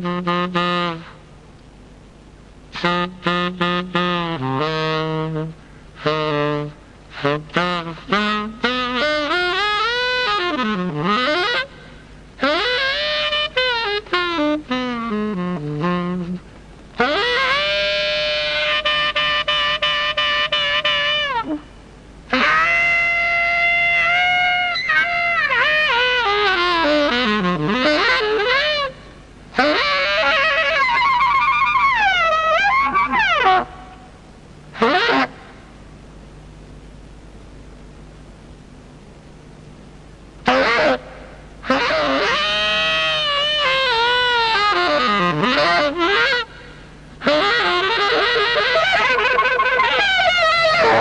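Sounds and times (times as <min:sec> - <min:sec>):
saxophone long held notes: 0:00.0 - 0:01.3, 0:02.7 - 0:35.5, 0:40.4 - 0:51.0
person's loud vocal cry: 0:50.8 - 0:51.0.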